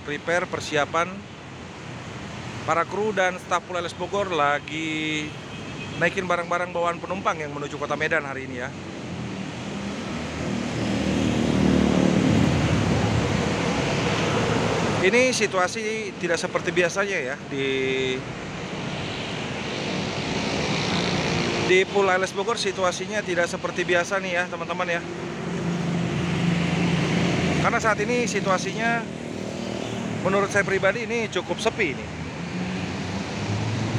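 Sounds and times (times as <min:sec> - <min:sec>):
road noise: 0:00.0 - 0:33.9.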